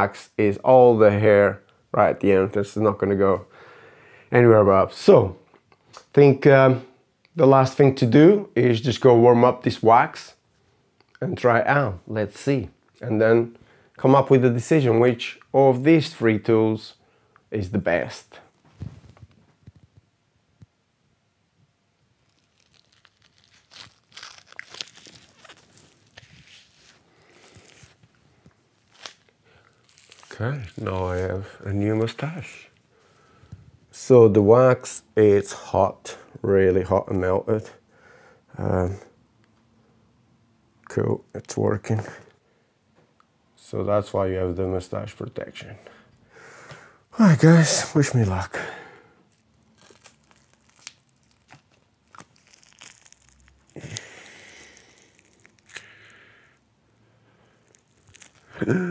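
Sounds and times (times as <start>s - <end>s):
plastic strip crinkling: 22.0s - 32.8s, 49.3s - 56.2s, 57.6s - 58.6s
faint clicks and crackles: 22.2s - 31.3s.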